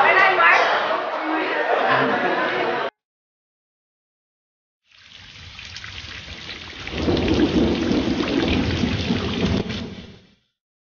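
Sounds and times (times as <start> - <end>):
rain: 4.9 - 10.5
low rumble of thunder: 6.8 - 10.3.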